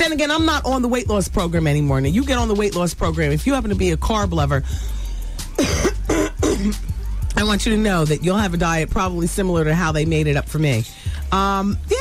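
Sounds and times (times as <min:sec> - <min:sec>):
woman coughing: 0:05.6 - 0:06.9.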